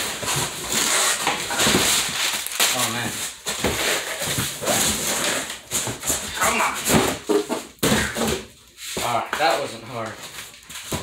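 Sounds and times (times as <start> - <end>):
cardboard boxes scraping: 0.0 - 11.0.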